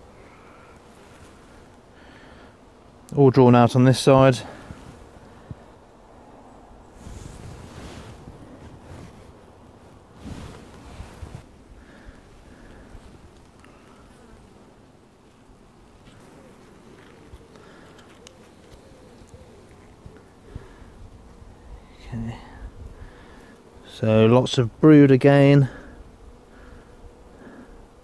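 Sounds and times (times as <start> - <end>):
bees buzzing: 0.0 - 28.0.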